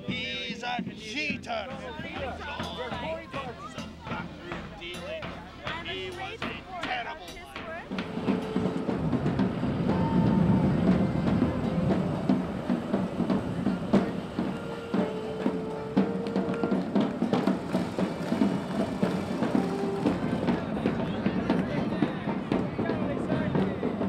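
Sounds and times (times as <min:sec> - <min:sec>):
drums beating: 0:00.0 - 0:24.0
accordion holding long notes: 0:07.9 - 0:20.8.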